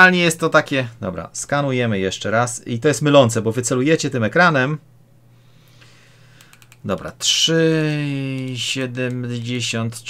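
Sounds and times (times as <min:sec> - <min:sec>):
man speaking: 0:00.0 - 0:04.9, 0:06.8 - 0:10.0
buttons clicking: 0:06.4 - 0:07.0.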